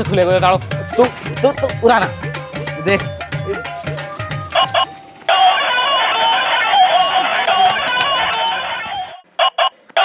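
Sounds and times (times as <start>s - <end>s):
doorbell chirping bird-call tune: 4.6s - 9.7s.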